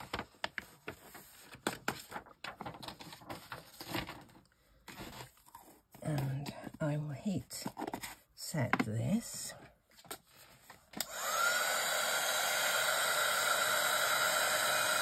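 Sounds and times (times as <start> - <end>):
paper crinkling and scraping: 0.0 - 6.5.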